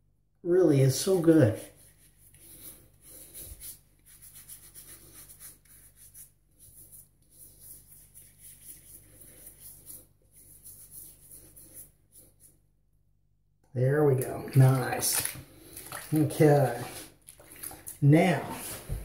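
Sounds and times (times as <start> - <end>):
hand rubbing over whiskers: 1.0 - 12.6, 14.2 - 17.2, 17.8 - 19.0.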